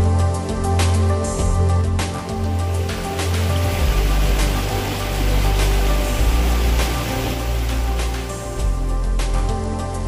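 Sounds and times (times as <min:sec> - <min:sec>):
background music with deep bass: 0:00.0 - 0:10.0.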